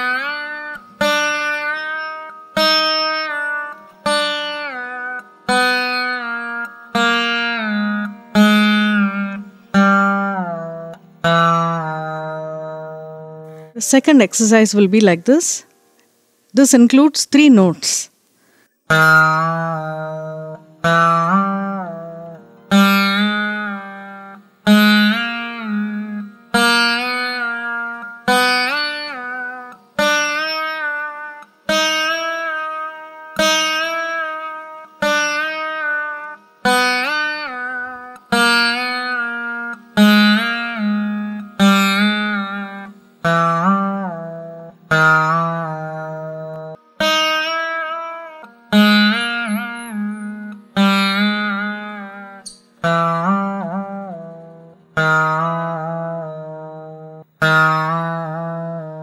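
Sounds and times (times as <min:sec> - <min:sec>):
plucked veena with bending notes: 0:00.0 - 0:16.4, 0:18.4 - 0:59.0.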